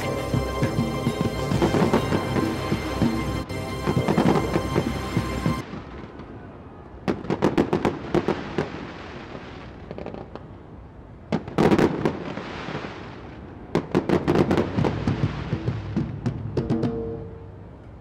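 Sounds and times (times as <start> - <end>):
fireworks bangs and crackles: 0.0 - 10.6, 11.2 - 17.1.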